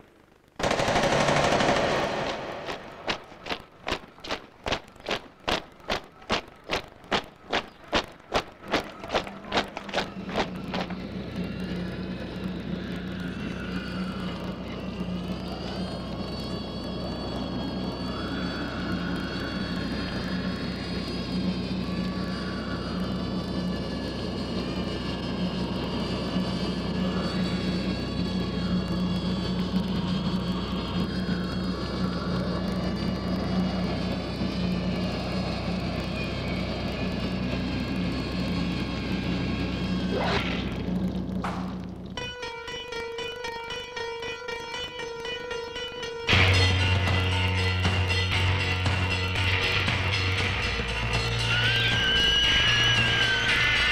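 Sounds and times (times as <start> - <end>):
droning soundtrack: 0.0 - 53.9.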